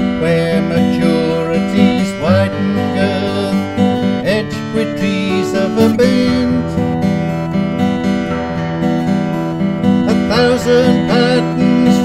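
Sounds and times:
acoustic guitar accompaniment: 0:00.0 - 0:12.0.

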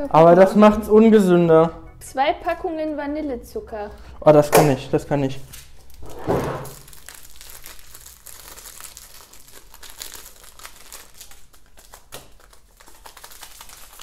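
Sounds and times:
paper packets tearing and crinkling: 0:05.4 - 0:14.0.

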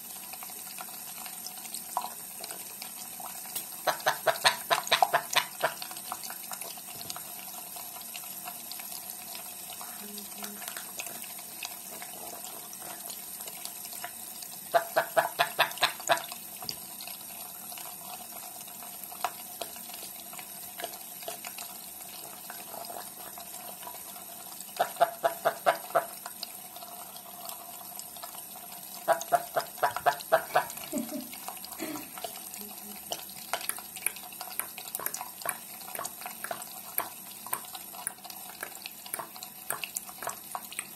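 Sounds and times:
tap water running into sink: 0:00.0 - 0:40.9.

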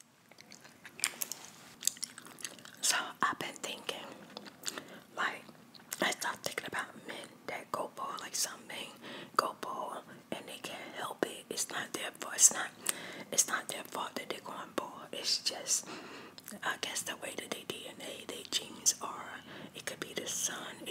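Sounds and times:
soft whispering: 0:02.8 - 0:04.3, 0:05.0 - 0:15.9, 0:16.5 - 0:20.9.

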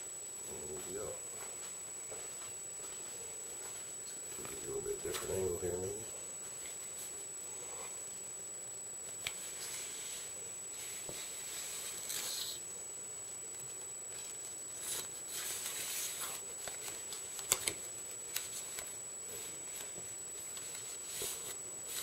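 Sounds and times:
tape and cardboard rustling: 0:10.9 - 0:12.6, 0:13.5 - 0:22.0.

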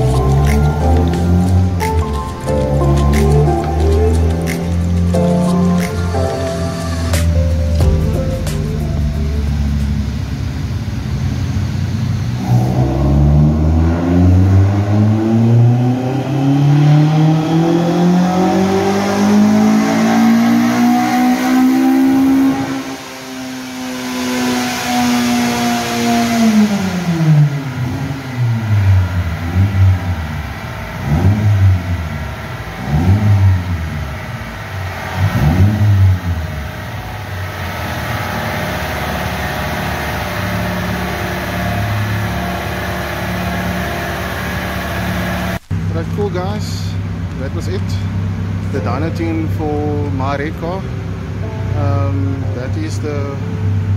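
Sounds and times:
car engine idling: 0:00.0 - 0:14.6, 0:25.1 - 0:53.9
car engine revving: 0:00.0 - 0:53.9.

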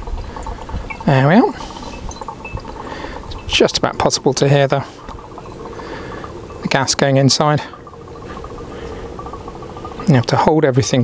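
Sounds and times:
gas hissing and bubbling into water: 0:00.0 - 0:11.0.

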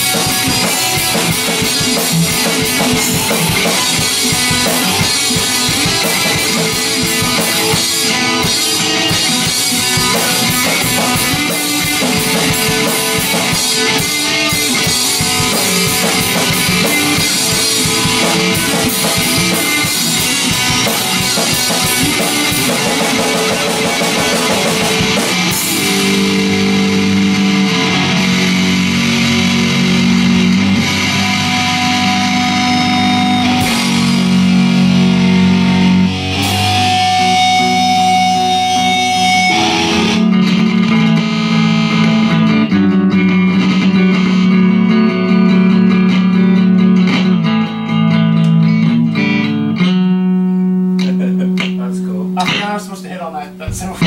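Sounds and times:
rock band playing: 0:00.0 - 0:54.0.

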